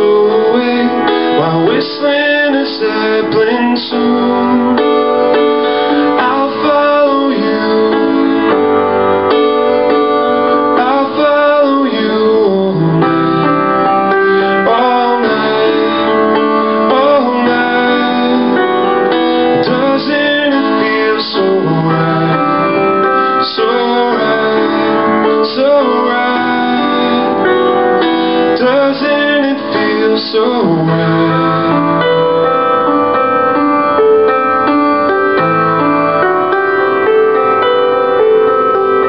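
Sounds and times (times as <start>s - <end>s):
upright piano playing pop song: 0.0s - 39.0s.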